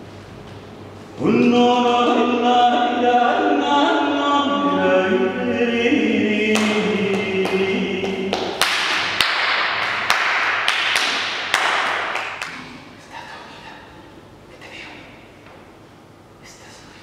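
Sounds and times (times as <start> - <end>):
chanted vocal tones: 1.1 - 10.1.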